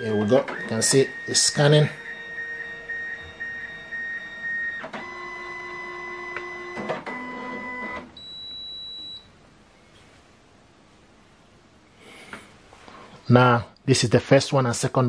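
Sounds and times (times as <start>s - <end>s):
high steady tone: 0.0s - 6.8s
scanner clicks: 0.0s - 9.2s
scanner motor whining: 0.0s - 9.2s.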